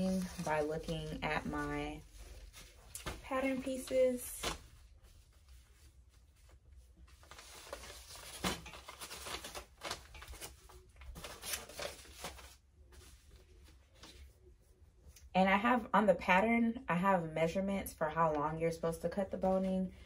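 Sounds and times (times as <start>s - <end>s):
paper and fabric rustling: 0.0s - 15.1s.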